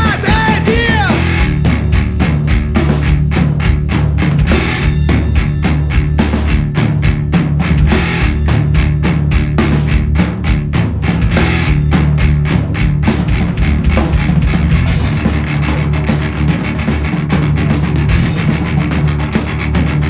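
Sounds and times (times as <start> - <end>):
instrumental rock music: 0.0 - 20.0.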